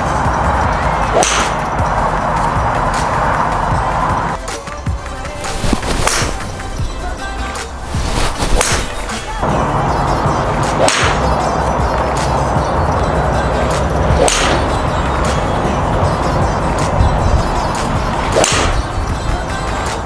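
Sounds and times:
golf club striking ball: 0:01.1 - 0:01.7, 0:10.7 - 0:11.3, 0:14.1 - 0:14.8, 0:18.3 - 0:18.9.

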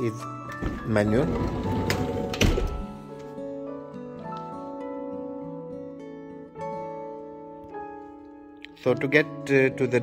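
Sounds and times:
background music: 0:00.0 - 0:10.0
sliding door thunking open: 0:00.6 - 0:02.9.

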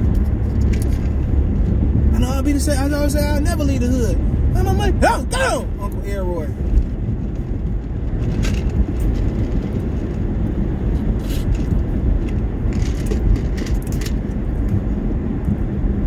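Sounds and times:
car engine and road rumble: 0:00.0 - 0:16.0.

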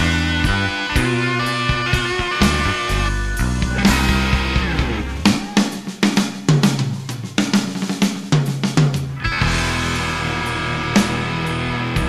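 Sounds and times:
guitar chords: 0:00.0 - 0:06.2, 0:09.2 - 0:12.0
rock band playing: 0:00.0 - 0:12.0
rock drum break: 0:00.0 - 0:12.0.

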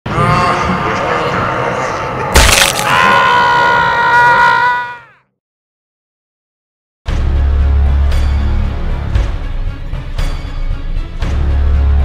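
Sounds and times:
sudden loud crack: 0:02.3 - 0:03.1.

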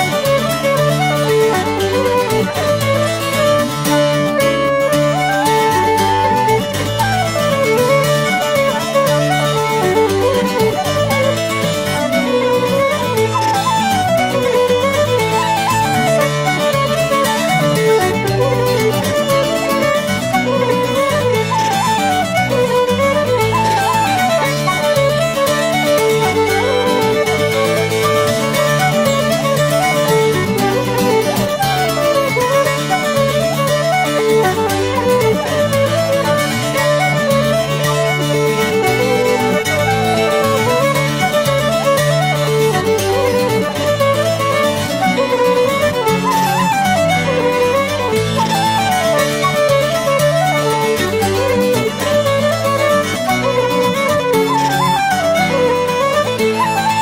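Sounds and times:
bouzouki accompaniment: 0:00.0 - 0:57.0
fiddle: 0:00.0 - 0:57.0
wooden flute melody: 0:00.0 - 0:57.0.

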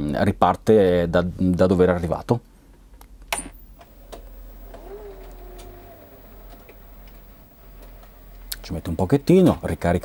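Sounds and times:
faint motor hum: 0:03.4 - 0:10.0
tape mechanism clicking: 0:03.4 - 0:10.0.

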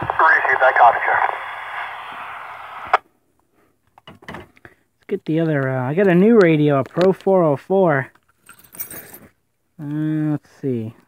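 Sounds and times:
radio click: 0:00.0 - 0:03.0
radio transmission: 0:00.0 - 0:03.0.

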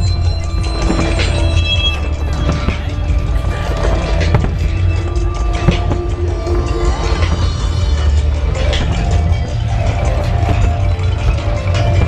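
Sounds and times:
firework bangs and crackle: 0:00.0 - 0:12.0
music playing: 0:00.0 - 0:12.0.

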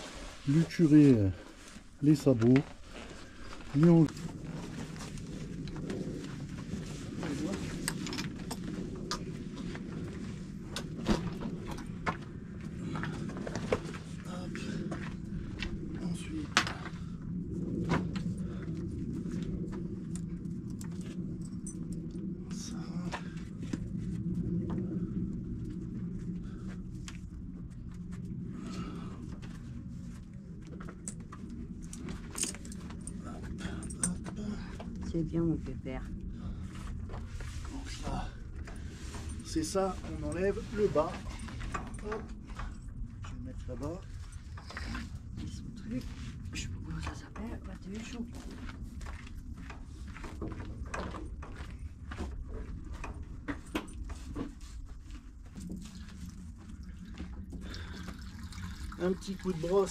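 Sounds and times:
metal buckles clinking and jingling: 0:31.8 - 0:34.3.

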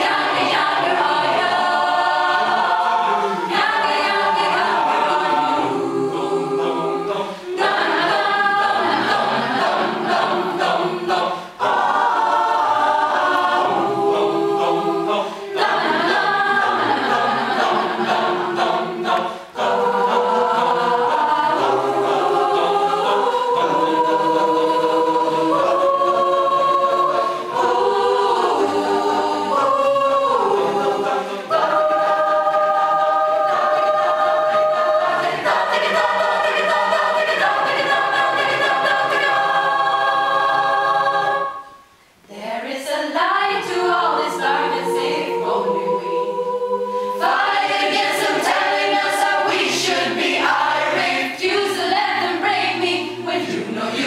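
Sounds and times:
mixed choir singing a cappella: 0:00.0 - 0:54.0.

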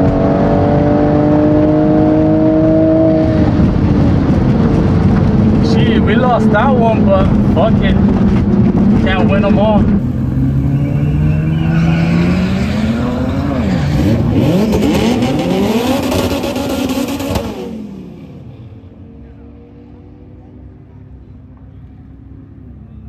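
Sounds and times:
racing car engines revving: 0:00.0 - 0:23.0.

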